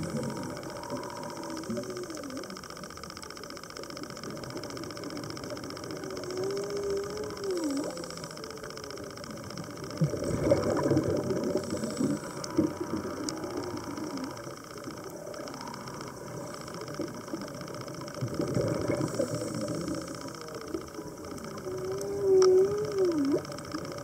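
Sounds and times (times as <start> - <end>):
loud wavering hum: 0.0 - 24.0
muffled underwater noise: 0.0 - 24.0
sharp clicks: 0.0 - 24.0.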